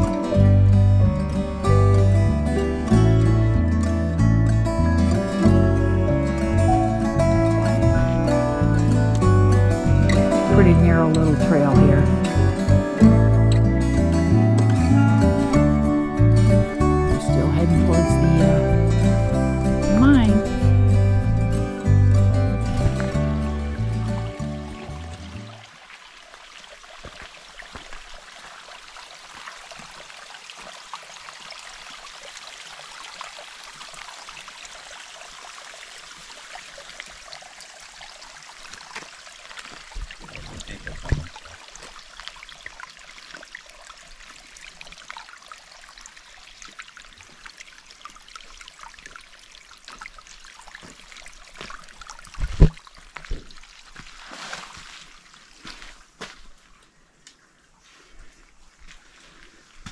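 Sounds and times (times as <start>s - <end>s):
water trickling over rocks: 0.0s - 57.4s.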